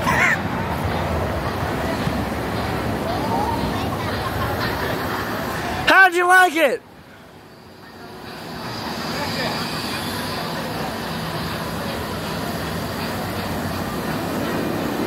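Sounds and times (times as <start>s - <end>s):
ride machinery rumbling: 0.0s - 15.0s.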